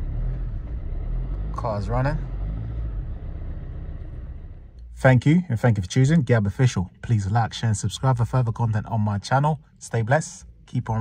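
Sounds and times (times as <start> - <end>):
car engine idling: 0.0 - 7.0.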